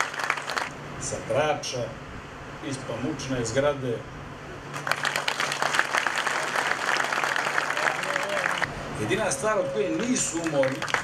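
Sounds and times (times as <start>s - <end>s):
audience applause: 0.0s - 0.7s, 4.7s - 8.7s, 10.0s - 11.0s.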